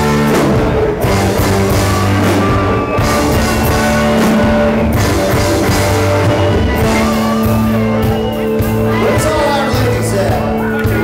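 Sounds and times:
drum kit beat: 0.0s - 11.0s
live country band playing: 0.0s - 11.0s.

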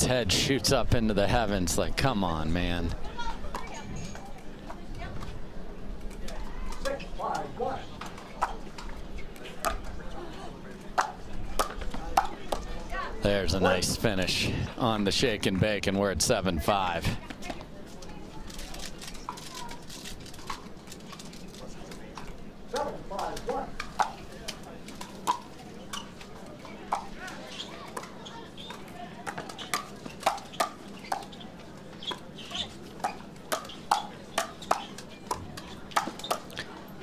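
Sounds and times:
low crowd murmur: 0.0s - 37.0s
paddles hitting plastic ball: 10.9s - 12.7s, 18.5s - 31.3s, 33.0s - 36.6s
ball bouncing: 11.0s - 12.7s, 33.0s - 36.5s.

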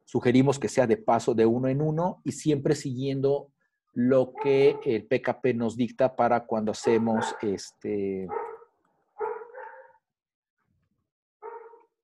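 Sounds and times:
dog barking: 4.3s - 5.0s, 6.8s - 7.7s, 8.3s - 10.1s, 11.4s - 12.0s.

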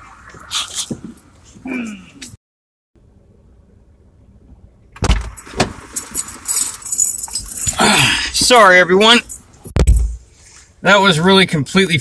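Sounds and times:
keys jangling: 6.0s - 7.9s.

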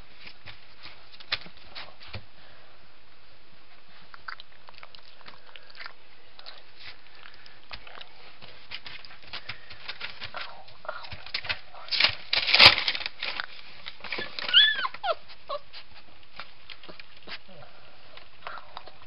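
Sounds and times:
puppies scuffling: 0.0s - 2.3s, 6.6s - 17.5s
puppy whining: 14.1s - 16.1s.

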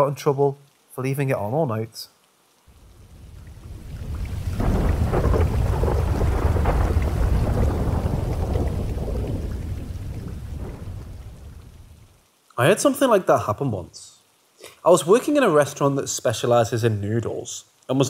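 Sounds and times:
rain: 0.0s - 18.0s
rolling thunder: 2.7s - 12.2s.

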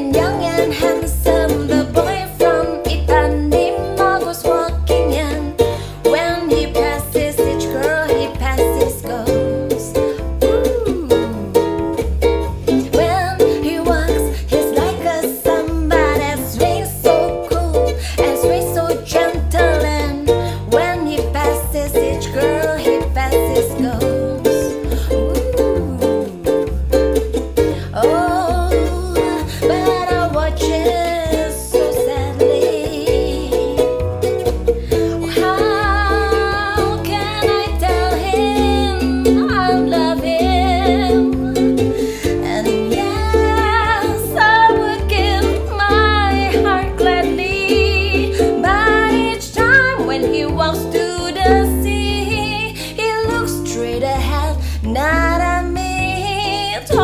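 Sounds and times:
woman singing: 0.0s - 26.8s, 27.7s - 34.1s, 34.7s - 57.0s
ukulele strumming: 0.0s - 57.0s.

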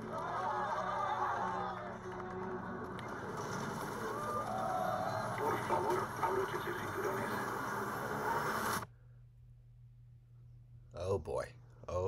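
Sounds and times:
trailer music: 0.0s - 8.4s
indistinct voices: 0.0s - 8.7s.

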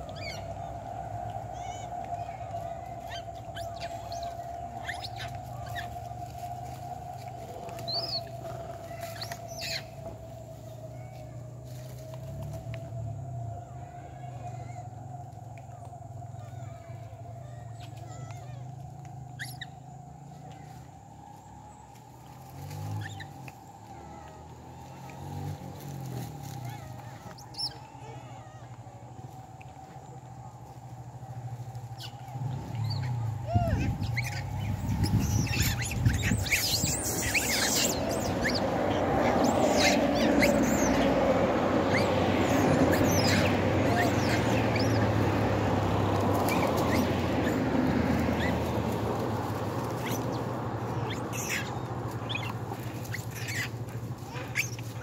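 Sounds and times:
motor vehicle approaching: 0.0s - 55.0s.

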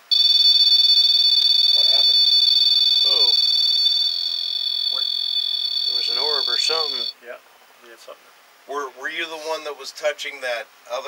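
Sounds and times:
high electronic alarm tone: 0.0s - 7.2s.

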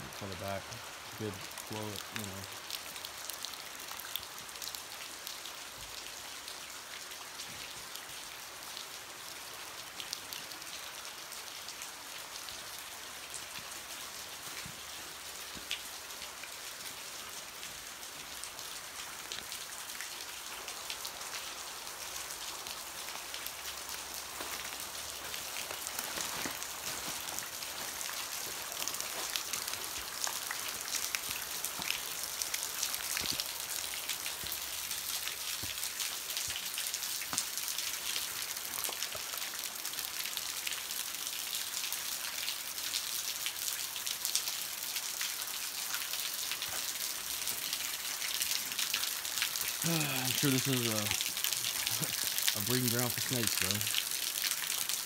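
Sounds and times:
water dripping: 17.6s - 55.0s
running water splashing: 24.0s - 39.6s, 46.1s - 55.0s.

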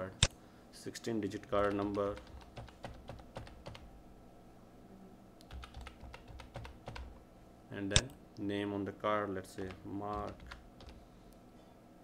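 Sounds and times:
faint keyboard typing: 1.3s - 3.9s, 5.4s - 7.2s, 9.5s - 11.0s.

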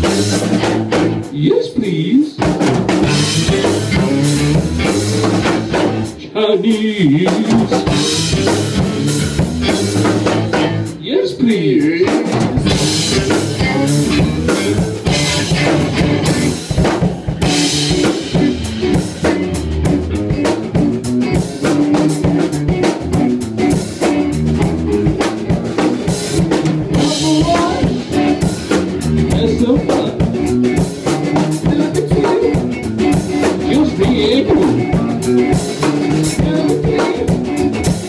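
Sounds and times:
electric bass line: 0.0s - 1.4s, 2.6s - 6.3s, 7.1s - 11.0s, 11.6s - 38.0s
drum kit with rimshots: 0.0s - 38.0s
electric guitar: 0.0s - 38.0s.

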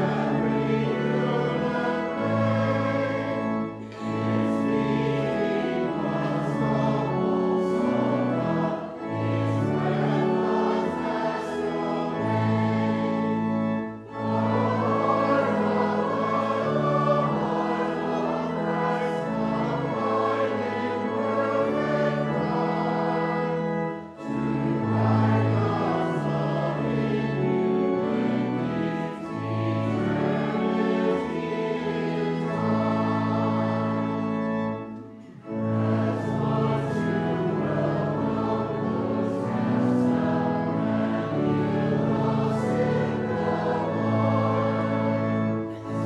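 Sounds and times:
congregation singing a hymn: 0.0s - 46.0s
instrumental accompaniment: 0.0s - 46.0s.

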